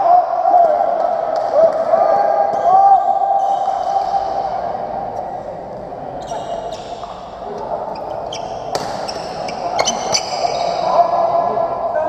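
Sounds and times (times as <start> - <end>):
voices in a hall: 0.0 - 12.0
shoes squeaking on wooden floor: 6.2 - 7.2, 8.0 - 10.8.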